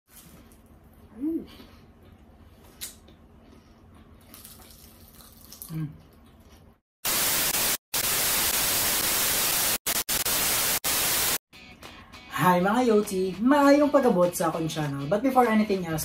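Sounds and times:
loud static hiss: 7.0 - 11.4.

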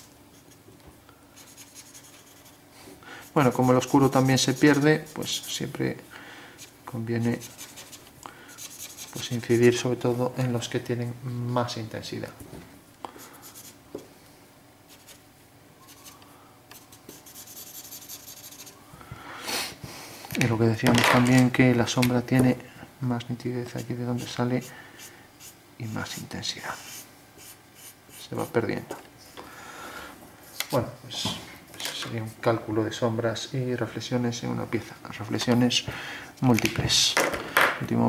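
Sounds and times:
marker scratching on paper: 1.4 - 2.6, 3.2 - 5.7, 7.3 - 9.7, 14.9 - 15.2, 15.9 - 18.7, 25.4 - 28.2.

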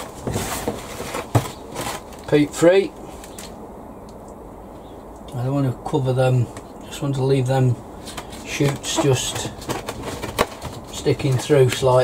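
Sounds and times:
compost rustling into plastic pot: 0.0 - 3.5, 8.0 - 12.0.

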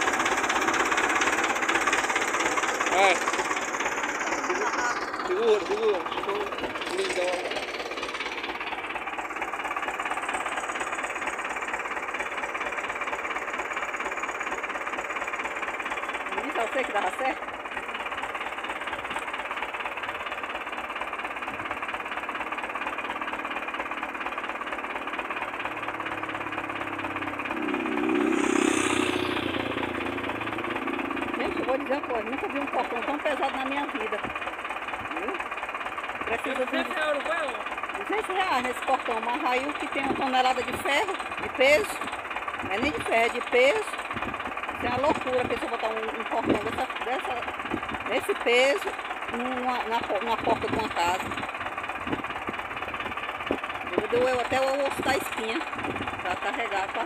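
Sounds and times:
tractor engine clattering: 0.0 - 57.0.

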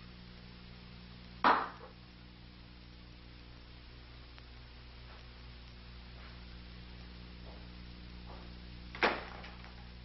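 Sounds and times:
sharp knock: 1.4 - 1.9.

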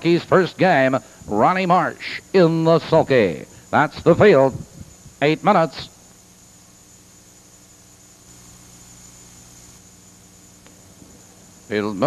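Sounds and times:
faint electrical hum: 0.0 - 12.0
steady low hiss: 0.0 - 12.0
thin high-pitched whine: 0.0 - 12.0.

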